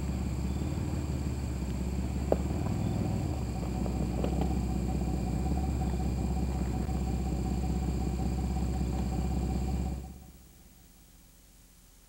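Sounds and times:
faint high hum: 0.0 - 12.0
low mechanical rumble: 0.0 - 12.0.

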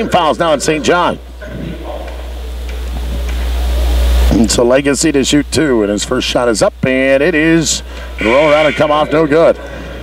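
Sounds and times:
deep steady hum: 0.0 - 10.0.

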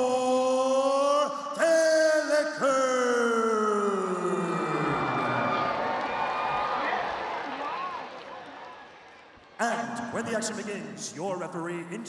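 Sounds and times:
announcer calling out: 0.0 - 4.3
crowd noise: 3.9 - 12.0.

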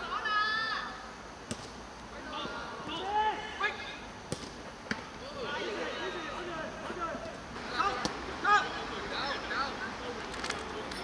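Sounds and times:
players shouting: 2.1 - 4.1, 5.0 - 10.8.

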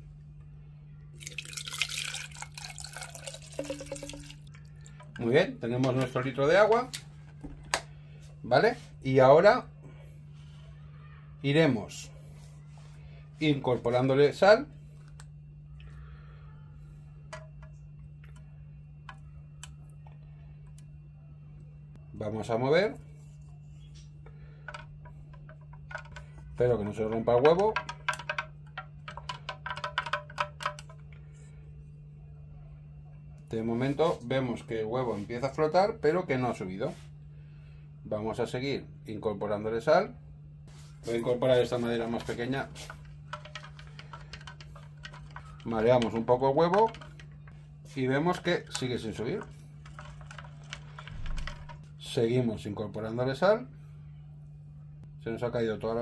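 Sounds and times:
low steady hum: 0.0 - 56.0
salt tapping into water jug: 1.2 - 5.2, 27.4 - 31.1
wooden spoon clicking on plastic jug: 27.4 - 31.2, 42.2 - 47.6, 48.2 - 51.9.

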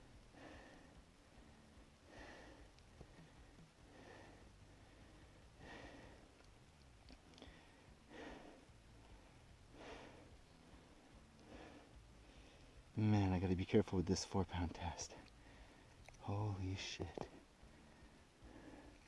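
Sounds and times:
man breathing faintly: 0.0 - 6.6, 7.2 - 13.0, 15.1 - 16.2, 17.0 - 19.0.

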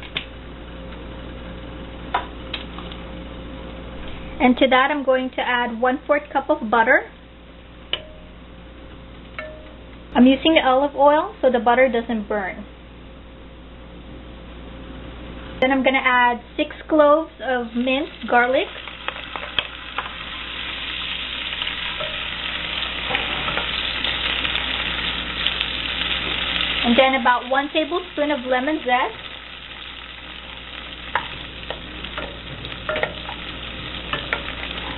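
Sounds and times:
garlic sizzling in butter: 17.7 - 34.9
metal utensil clinking on pot: 32.2 - 33.4.

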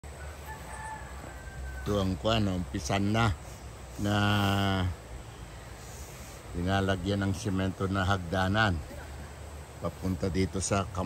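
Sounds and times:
rooster crowing faintly: 0.0 - 3.4
man speaking: 1.8 - 5.2, 6.3 - 11.0.

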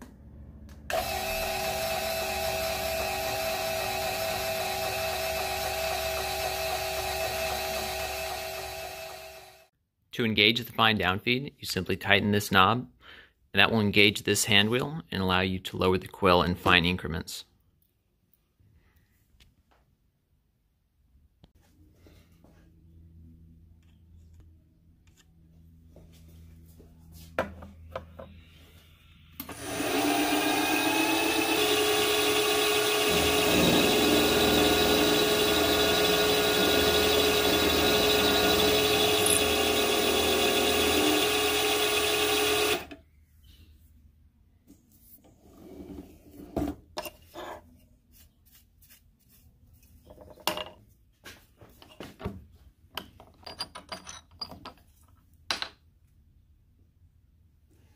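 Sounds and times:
milling machine motor whine: 0.9 - 9.6, 29.4 - 42.9.

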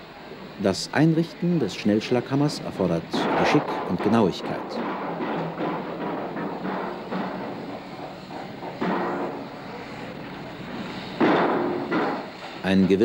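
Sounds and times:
steam hissing: 0.0 - 13.0
pile hammer knocking: 3.1 - 9.5, 11.2 - 12.3.

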